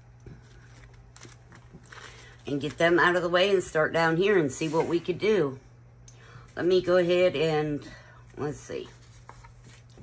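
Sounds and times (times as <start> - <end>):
low steady hum: 0.0 - 10.0
rustling paper and plastic: 0.3 - 2.9, 8.5 - 10.0.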